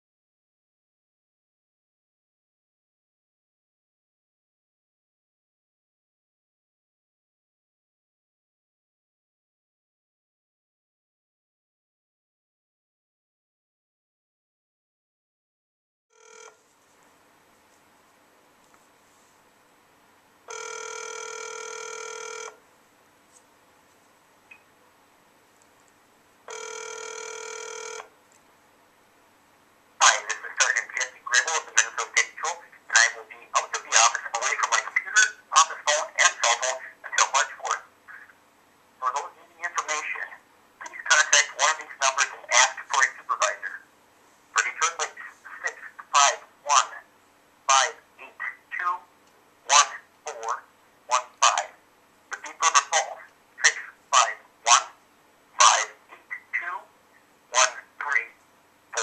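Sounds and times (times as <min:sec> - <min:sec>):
buzzy phone ring-back tone: 0:16.2 - 0:16.7, 0:20.5 - 0:22.6, 0:26.5 - 0:28.1
voice through phone speaker: 0:30.0 - 0:38.3, 0:39.0 - 0:43.8, 0:44.6 - 0:47.1, 0:47.7 - 0:49.1, 0:49.7 - 0:55.0, 0:55.6 - 0:56.9, 0:57.5 - 0:58.4.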